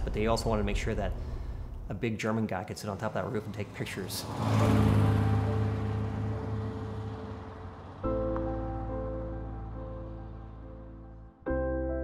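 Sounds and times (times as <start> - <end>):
car engine passing by: 2.9 - 11.1.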